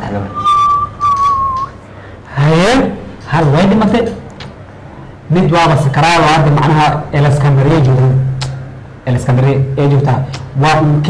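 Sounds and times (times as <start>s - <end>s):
person whistling high note: 0.0s - 1.8s.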